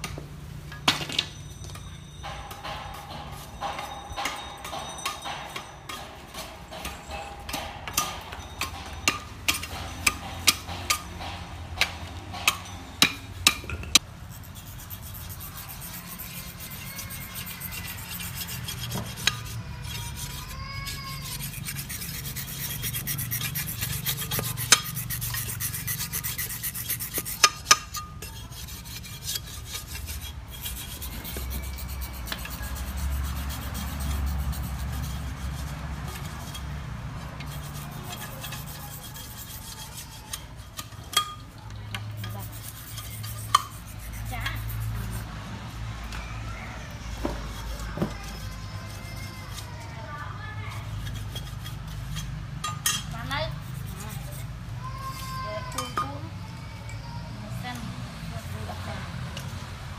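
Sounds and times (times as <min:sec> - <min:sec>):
grinding on sharpening stone: 0:14.3 - 0:36.7, 0:37.4 - 0:41.4, 0:42.1 - 0:45.3, 0:50.8 - 0:54.5
knife shaving bamboo strips: 0:14.4 - 0:40.8.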